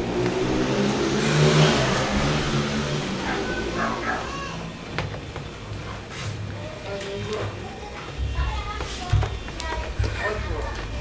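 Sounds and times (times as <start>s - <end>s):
motor vehicle passing by: 0.0s - 6.4s
faint voices: 2.9s - 4.9s, 5.7s - 11.0s.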